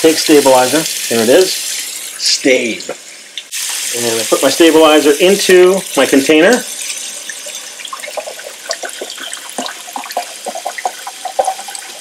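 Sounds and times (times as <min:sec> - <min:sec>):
running kitchen faucet: 0:00.0 - 0:12.0
liquid pouring into plastic tank: 0:06.8 - 0:12.0.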